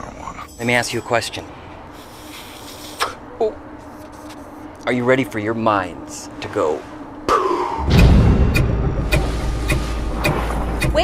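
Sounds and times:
deep bass rumble: 5.3 - 11.0
sharp even ticks: 8.5 - 11.0.

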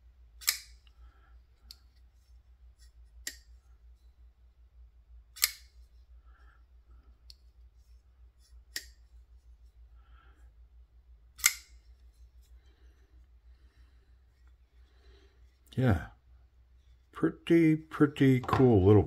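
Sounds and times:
folding knife clicking: 0.4 - 0.9, 5.4 - 5.7, 8.7 - 9.0, 11.4 - 11.8.

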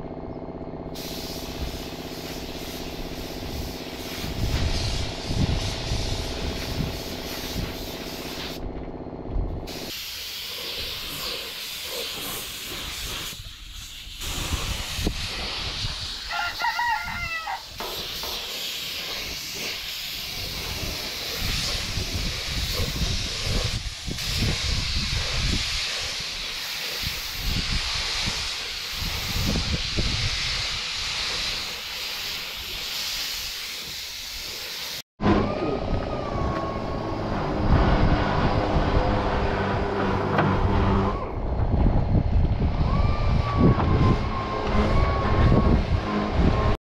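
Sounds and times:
spray gun hissing: 1.0 - 8.6, 9.7 - 35.0
rooster crowing: 16.3 - 17.7.

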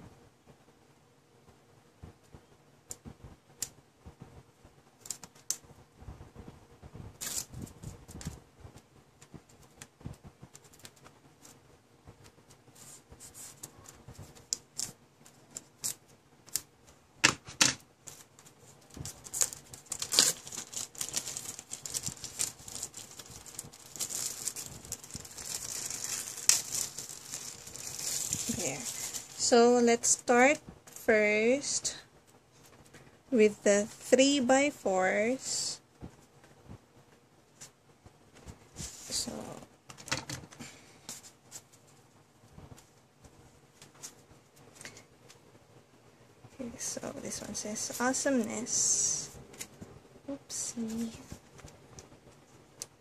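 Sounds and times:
plastic wrap crinkling: 18.0 - 30.2.

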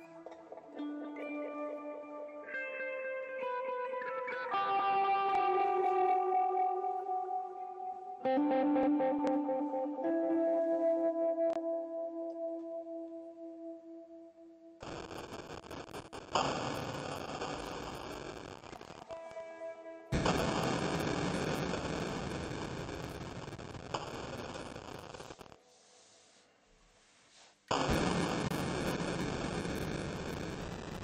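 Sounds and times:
electric guitar drone: 0.0 - 25.4, 27.7 - 31.0
noisy wall of guitar sound: 0.0 - 25.8.

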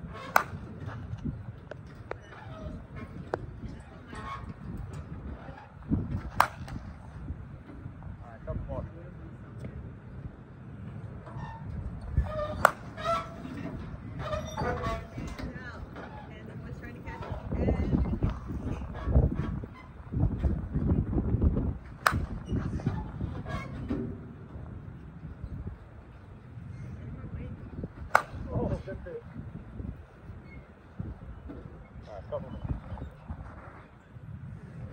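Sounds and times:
wind rumbling on microphone: 0.0 - 34.9
softball bat striking ball: 0.3 - 0.8, 6.3 - 6.8, 12.6 - 13.0, 22.0 - 22.4, 28.0 - 28.5.

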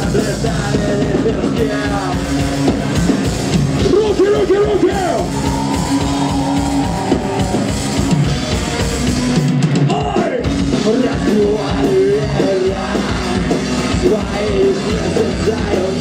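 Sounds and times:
live rock band playing: 0.0 - 16.0.

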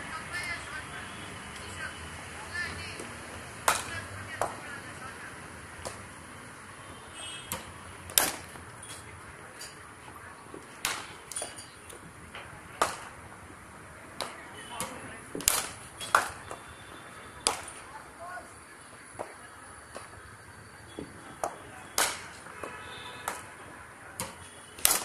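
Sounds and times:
cricket bat striking ball: 3.0 - 4.7, 5.8 - 6.2, 7.4 - 8.7, 10.8 - 12.0, 12.7 - 13.2, 14.2 - 16.7, 17.4 - 17.9, 20.9 - 23.6, 24.2 - 25.0.

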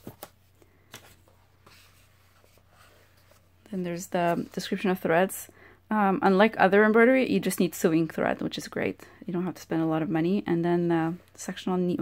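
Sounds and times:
paper rustling: 0.0 - 3.5.

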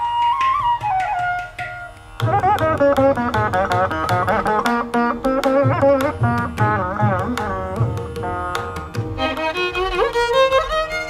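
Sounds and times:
bamboo flute: 0.0 - 11.0
string instrument phrase: 0.0 - 11.0.

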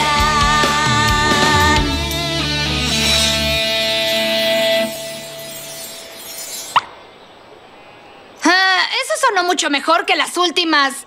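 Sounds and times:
electric guitar note ringing: 0.8 - 7.0.

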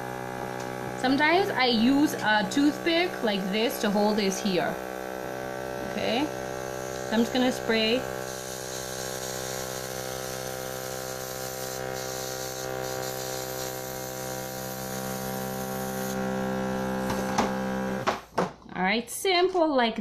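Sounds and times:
airbrush compressor humming: 0.0 - 18.5
air hissing from airbrush: 10.6 - 14.8.

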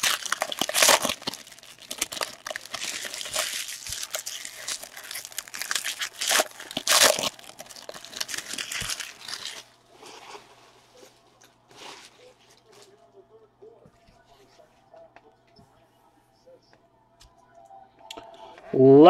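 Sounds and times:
foil wrapper tearing and crinkling: 0.0 - 10.4.

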